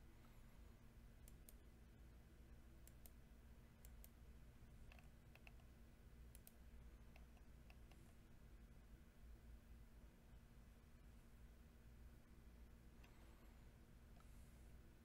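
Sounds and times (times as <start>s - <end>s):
faint low hum: 0.0s - 15.0s
faint sharp clicks: 1.2s - 1.6s, 2.8s - 3.2s, 3.8s - 4.2s, 6.3s - 8.2s.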